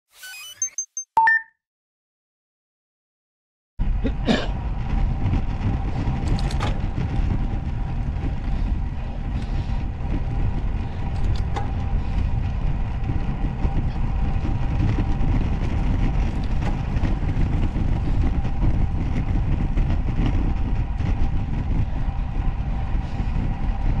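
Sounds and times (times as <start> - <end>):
road vibration: 3.8 - 24.0
wind rumble: 3.8 - 24.0.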